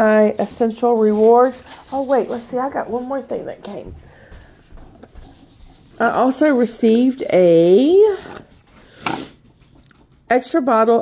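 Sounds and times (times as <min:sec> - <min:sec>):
person sniffing: 0:08.8 - 0:09.4.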